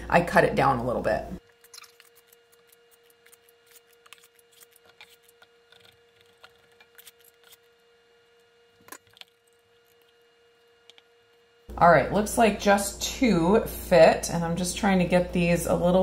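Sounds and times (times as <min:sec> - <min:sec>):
ice cream scoop clicks and scrapes: 0:01.6 - 0:07.7.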